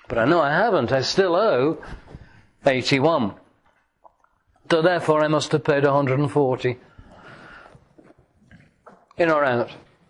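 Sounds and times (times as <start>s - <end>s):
man breathing softly: 1.8s - 2.6s, 6.8s - 8.0s.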